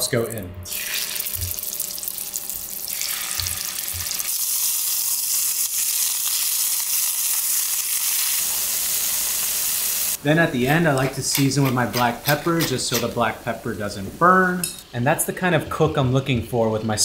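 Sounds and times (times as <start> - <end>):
scallops sizzling in a skillet: 0.7 - 10.2.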